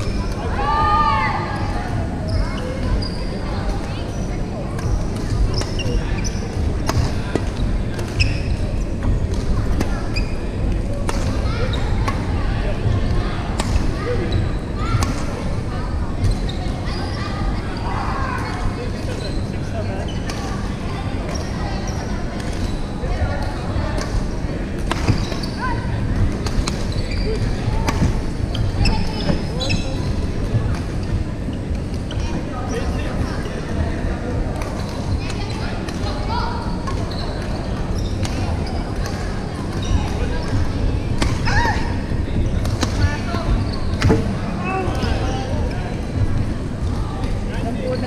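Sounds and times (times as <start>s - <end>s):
low hall rumble: 0.0s - 48.0s
sneakers squeaking on wooden floor: 2.2s - 3.4s, 7.6s - 8.6s, 25.0s - 25.8s, 26.6s - 32.9s, 36.6s - 45.6s
shoe squeaks on court floor: 8.2s - 8.6s, 25.1s - 25.6s, 26.8s - 30.2s, 36.9s - 40.7s.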